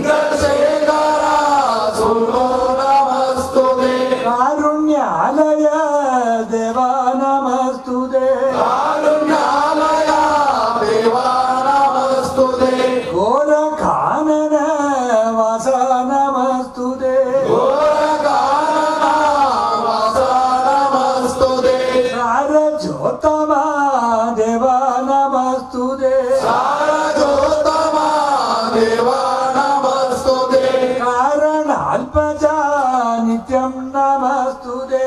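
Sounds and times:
man chanting devotional song: 0.0s - 35.0s.

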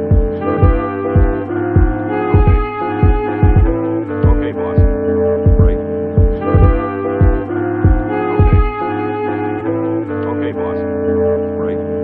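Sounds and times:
hip-hop beat: 0.0s - 12.0s
sustained sampled chords: 0.0s - 12.0s
deep kick drum: 0.1s - 8.7s.

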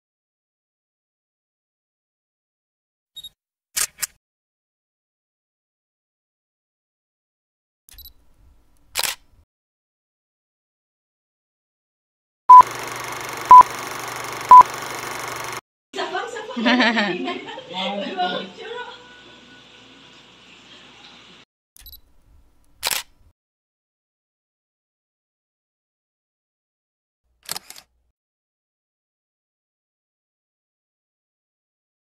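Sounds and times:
camera shutter click: 8.9s - 9.3s, 22.8s - 23.1s, 27.4s - 27.9s.

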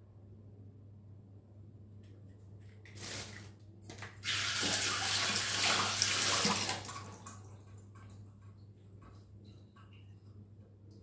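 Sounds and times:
water running from a tap: 4.2s - 7.4s.

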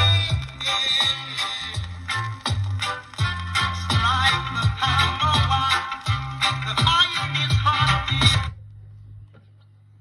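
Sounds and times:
record surface ticks: 0.0s - 6.2s
reggae song from vinyl: 0.0s - 9.2s.

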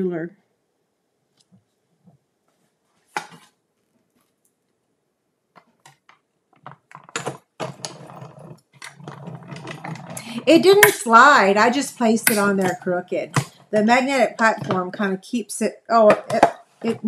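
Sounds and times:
plastic plates being stacked: 12.2s - 15.0s.

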